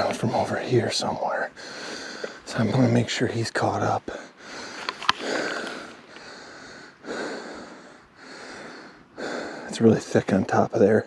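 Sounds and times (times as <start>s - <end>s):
man breathing hard: 1.5s - 2.5s, 4.1s - 9.7s.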